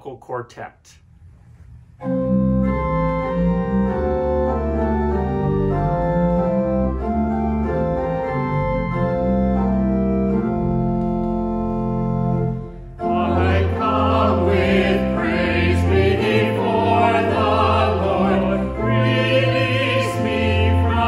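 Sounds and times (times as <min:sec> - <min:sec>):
organ playing hymn chords: 0:02.0 - 0:21.0.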